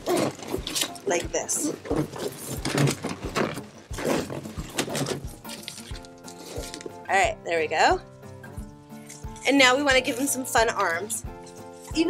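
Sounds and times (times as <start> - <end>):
balloons rubbing and squeaking: 0.0 - 7.1
background music with held notes: 0.0 - 12.0.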